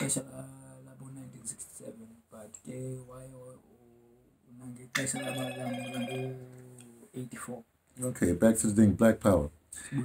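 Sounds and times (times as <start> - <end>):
phone ringtone melody: 5.1 - 6.4.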